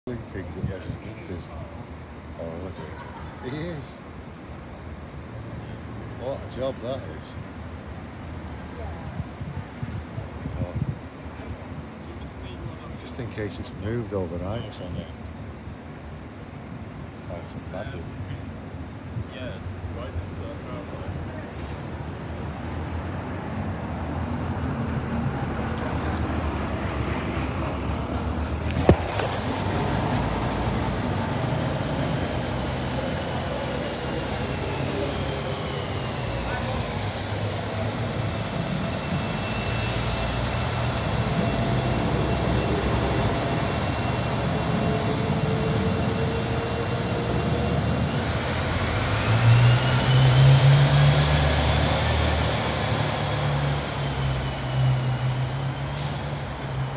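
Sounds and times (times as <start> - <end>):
diesel train engines whining: 13.8 - 56.9.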